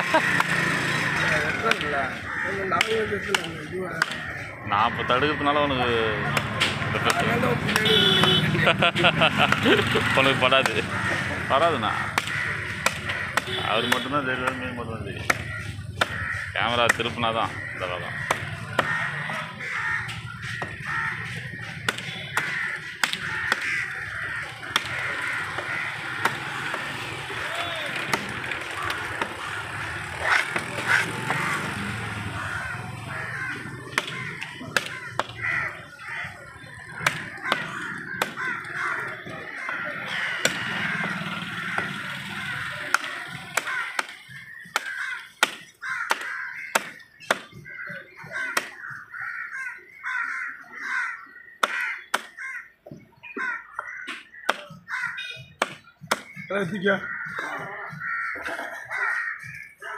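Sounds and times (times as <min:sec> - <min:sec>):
crows cawing: 0:00.0 - 0:59.9
cleaver chopping fish on wood: 0:01.6 - 0:01.9, 0:02.7 - 0:04.3, 0:06.3 - 0:08.4, 0:10.6 - 0:11.0, 0:12.0 - 0:17.2, 0:18.1 - 0:19.4, 0:21.8 - 0:29.4, 0:33.7 - 0:35.8, 0:36.9 - 0:39.0, 0:39.6 - 0:42.0, 0:42.9 - 0:48.9, 0:51.6 - 0:52.4, 0:53.4 - 0:56.5.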